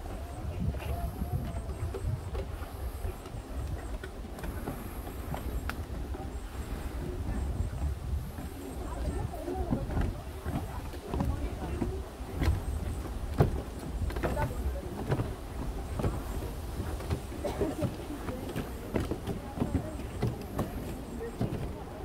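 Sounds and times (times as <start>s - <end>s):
footsteps on wooden steps: 0.0s - 22.0s
people talking: 0.0s - 22.0s
steady low rumble: 0.0s - 22.0s.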